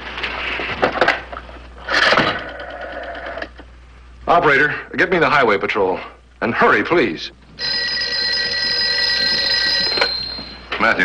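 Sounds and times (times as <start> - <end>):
telephone bell ringing: 7.6 - 10.8
receiver picked up: 7.7 - 10.8.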